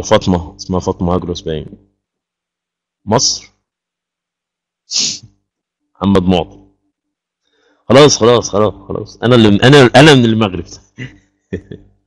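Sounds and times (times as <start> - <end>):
man's voice burst: 8.0 - 11.8.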